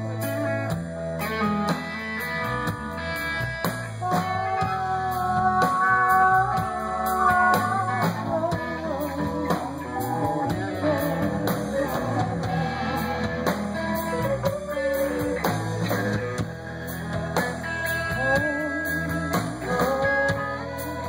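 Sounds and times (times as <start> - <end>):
lead guitar melody: 0.0 - 21.0
live blues rock band: 0.0 - 21.0.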